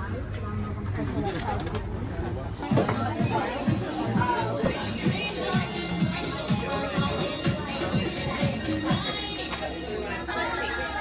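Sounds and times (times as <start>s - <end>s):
chatter of many shoppers: 0.0s - 11.0s.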